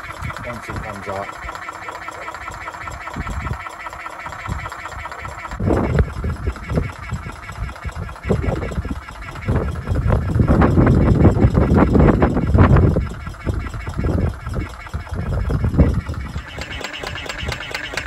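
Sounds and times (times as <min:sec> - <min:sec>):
diaphragm pump pulsing buzz: 0:00.0 - 0:18.0.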